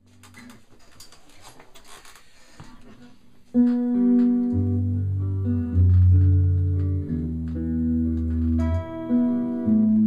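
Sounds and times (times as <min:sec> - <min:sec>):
handling noise on guitar: 0:00.0 - 0:10.0.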